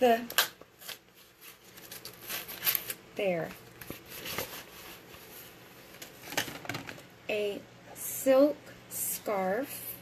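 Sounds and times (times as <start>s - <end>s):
scarf and paper rustling: 0.8s - 6.7s.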